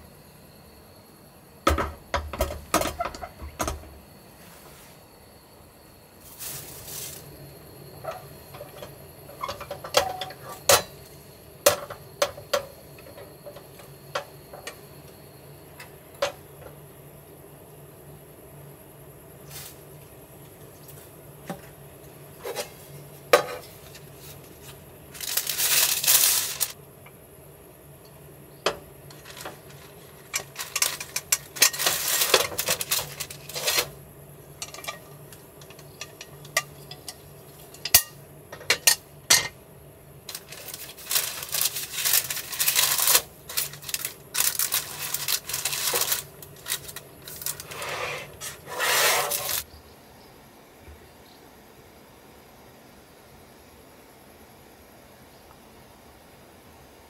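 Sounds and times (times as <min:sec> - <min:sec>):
paper rustling: 0:23.7 - 0:26.8, 0:29.1 - 0:34.0, 0:40.3 - 0:49.6.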